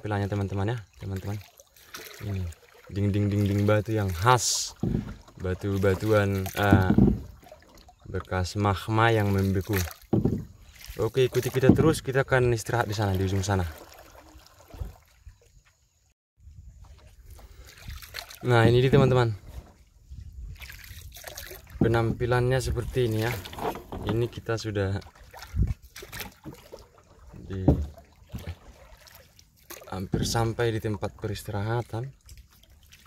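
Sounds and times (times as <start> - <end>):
man talking: 0.0 - 1.4, 2.2 - 4.8, 5.4 - 7.2, 8.1 - 9.9, 11.0 - 13.8, 18.4 - 19.4, 21.8 - 25.0, 27.4 - 28.5, 29.9 - 32.1
water sloshing and trickling: 0.0 - 33.0.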